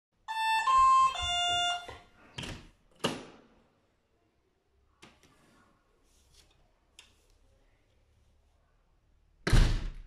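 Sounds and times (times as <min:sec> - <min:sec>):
electronic doorbell chime: 0:00.3 - 0:02.0.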